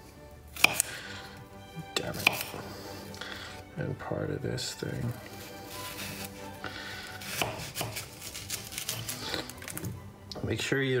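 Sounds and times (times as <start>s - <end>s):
background music: 0.0s - 11.0s
knife chopping on cutting board: 0.6s - 1.1s, 2.0s - 2.7s, 5.4s - 9.9s.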